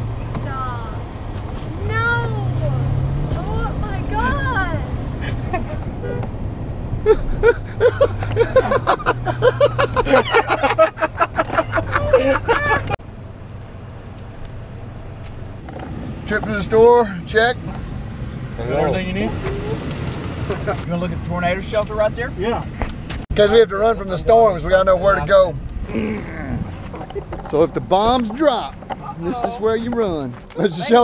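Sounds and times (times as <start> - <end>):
truck engine hum: 0.0 - 31.0
people laughing: 7.0 - 13.0, 20.4 - 20.9, 26.0 - 27.5.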